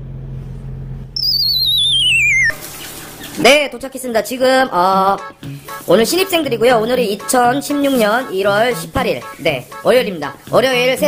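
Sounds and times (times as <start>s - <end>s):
cartoon descending whistle: 1.2s - 2.7s.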